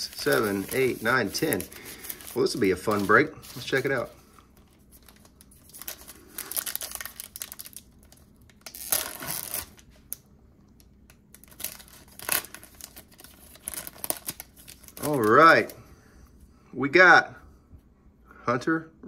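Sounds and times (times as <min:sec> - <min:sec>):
foil wrapper tearing and crinkling: 0:00.0 - 0:04.0, 0:05.0 - 0:10.2, 0:11.3 - 0:15.7.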